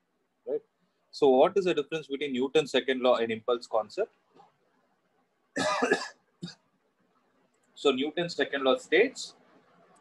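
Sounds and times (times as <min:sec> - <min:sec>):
man coughing: 0:05.6 - 0:06.7.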